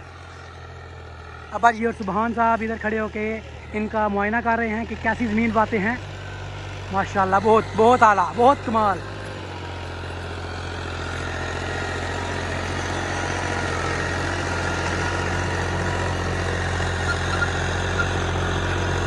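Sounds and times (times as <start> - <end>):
diesel tractor engine running: 0.0 - 19.0.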